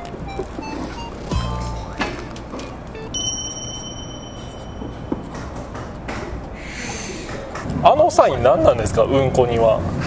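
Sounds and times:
high bell chime: 3.1 - 5.6.

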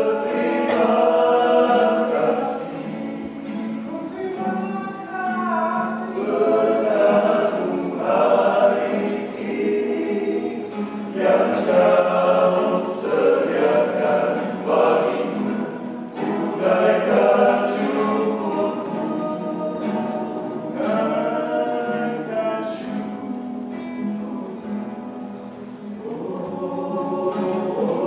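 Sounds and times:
men singing a hymn: 0.0 - 25.1, 25.9 - 28.0
acoustic guitar: 0.0 - 28.0.

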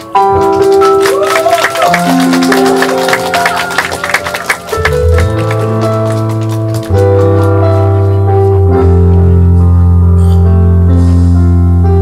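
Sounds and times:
sustained keyboard chords: 0.0 - 12.0
bass guitar notes: 4.8 - 12.0.

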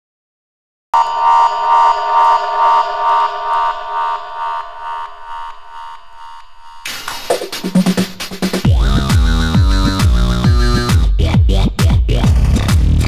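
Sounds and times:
pulsing buzzer-like synth tone: 1.0 - 7.0.

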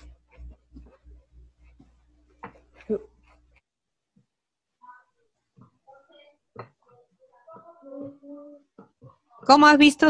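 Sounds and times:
faint high-pitched vocal sound: 4.8 - 8.9.

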